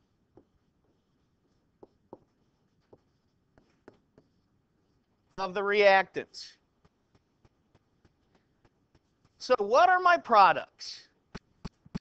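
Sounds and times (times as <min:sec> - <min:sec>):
stylus tapping and scraping on tablet: 0:00.0 - 0:05.4, 0:06.4 - 0:09.8, 0:11.2 - 0:12.0.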